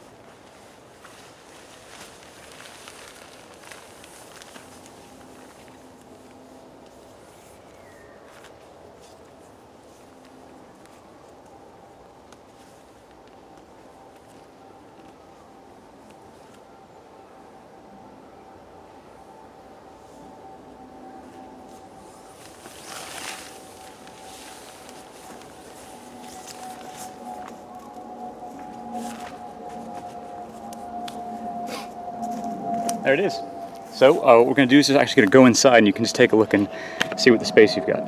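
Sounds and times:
steady droning hum: 0.0 - 38.0
tarp fabric rustling: 0.1 - 11.3, 21.2 - 35.6
footsteps on dry leaves: 0.1 - 11.4, 21.7 - 35.8.

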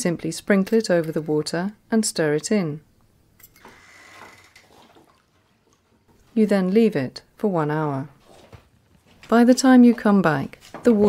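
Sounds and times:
water swishing in a plastic basin: 4.3 - 6.4.

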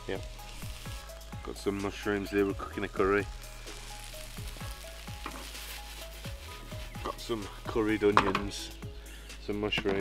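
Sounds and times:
vegetables sizzling in a frying pan: 0.0 - 9.2
soft background music: 0.0 - 10.0.

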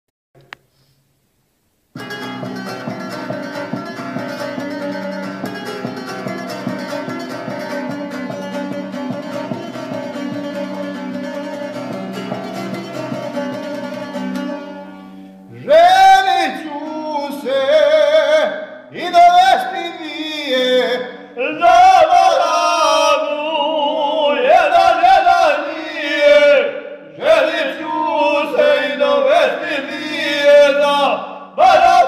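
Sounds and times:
folk lute strummed rapidly: 2.0 - 15.1
man singing folk style: 15.5 - 32.0.

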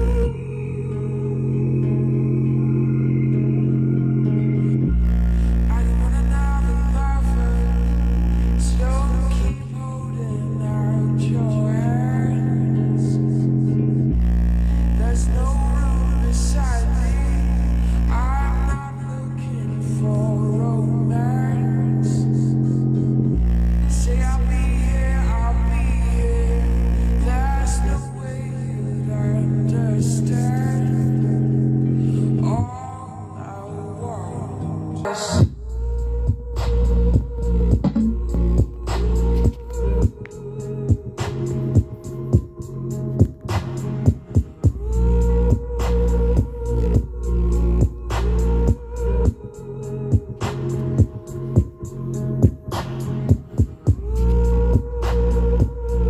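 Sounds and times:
bass-heavy music from speaker: 0.0 - 56.0
person singing: 0.0 - 56.0
deep bass note: 35.4 - 49.5.

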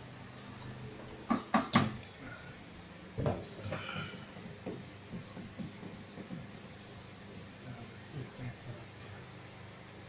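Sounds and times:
sharp knocks: 1.3 - 2.0, 3.2 - 6.5.

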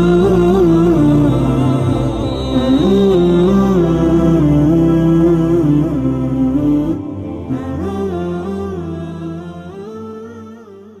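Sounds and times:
low steady tone: 0.0 - 11.0
wordless vocal humming: 0.0 - 11.0.

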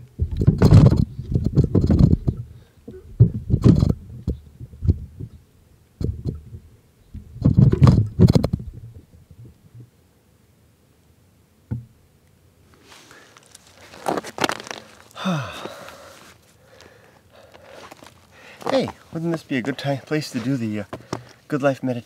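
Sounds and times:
microphone handling bumps: 0.0 - 5.4, 6.0 - 10.0
camera scraping on rocks: 12.8 - 16.5, 17.4 - 22.0.

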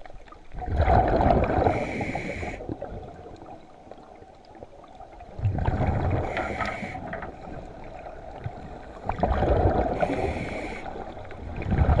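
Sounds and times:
underwater regulator bubbles: 0.0 - 4.2, 5.1 - 12.0.

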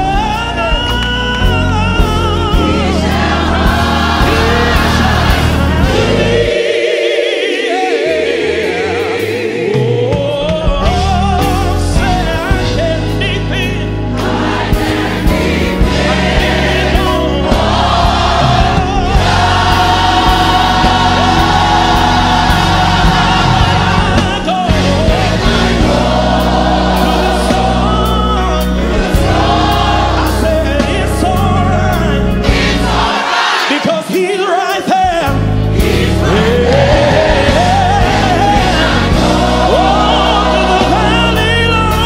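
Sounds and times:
man singing lead: 0.0 - 3.1, 9.6 - 14.1, 23.4 - 25.6, 30.0 - 32.5, 33.7 - 42.0
gospel choir singing: 0.0 - 42.0
instrumental backing: 0.0 - 42.0.

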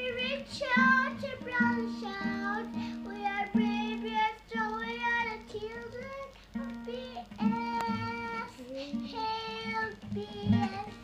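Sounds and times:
boy singing: 0.0 - 11.0
nylon-string guitar strumming: 0.0 - 11.0.

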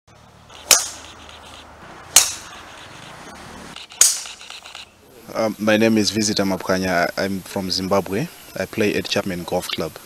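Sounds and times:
golf clubs striking balls: 0.5 - 3.1, 3.7 - 4.7.

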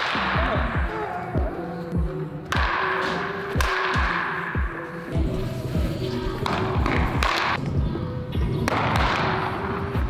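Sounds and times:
music with thumping beat: 0.0 - 10.0.

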